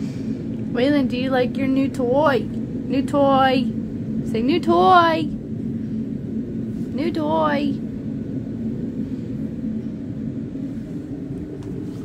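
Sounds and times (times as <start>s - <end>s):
low mechanical hum: 0.0s - 12.0s
low rumble: 0.0s - 12.0s.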